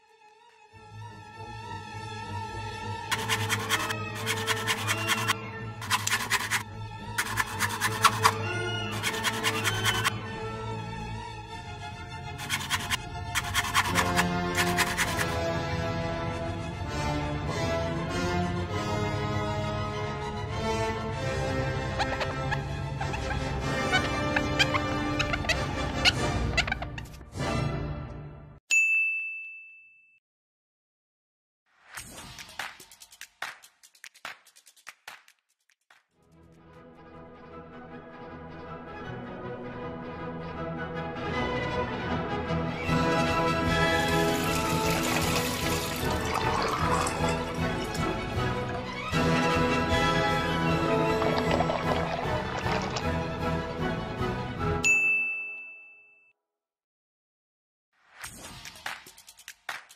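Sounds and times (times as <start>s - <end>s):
background music: 0.0s - 28.6s, 36.2s - 54.9s
knife rubbing on sink drainboard: 3.1s - 6.6s, 7.2s - 10.1s, 12.4s - 15.4s
knife slicing an apple: 3.1s - 6.6s, 7.2s - 10.1s, 12.4s - 15.4s
bright ding chime: 28.7s - 30.2s, 54.8s - 56.3s.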